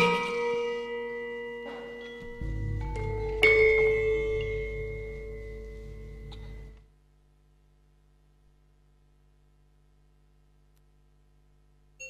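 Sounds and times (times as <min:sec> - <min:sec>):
mallet-struck metal percussion note: 0:00.0 - 0:06.8.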